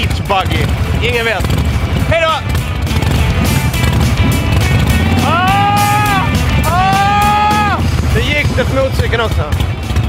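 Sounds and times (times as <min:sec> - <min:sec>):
bass-heavy music: 0:00.0 - 0:10.0.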